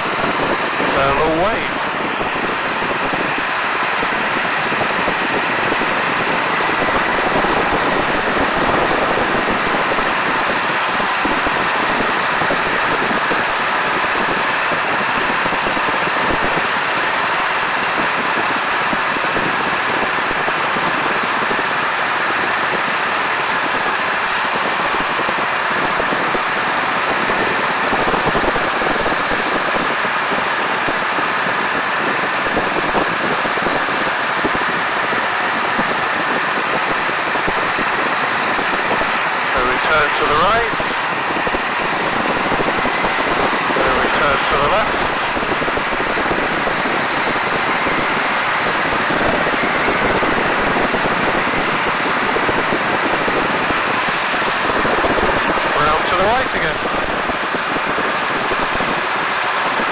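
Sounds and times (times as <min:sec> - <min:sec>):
biplane engine running: 0:00.0 - 0:59.9.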